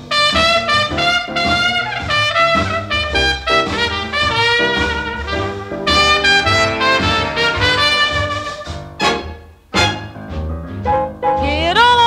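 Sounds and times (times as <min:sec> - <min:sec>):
brass chords: 0:00.0 - 0:11.7
swing big band playing: 0:00.0 - 0:12.0
pulsing bass line: 0:10.2 - 0:12.0.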